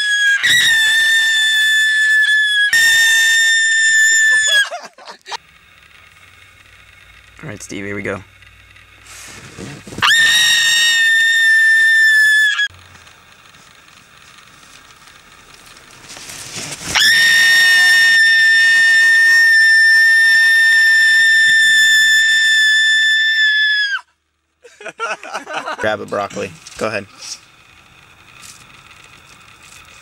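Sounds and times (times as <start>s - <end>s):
man screaming in fright: 0.0s - 4.9s.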